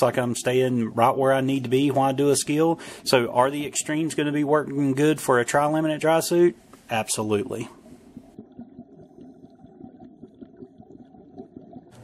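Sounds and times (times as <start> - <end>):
underwater bubbles rumbling: 7.2 - 12.0.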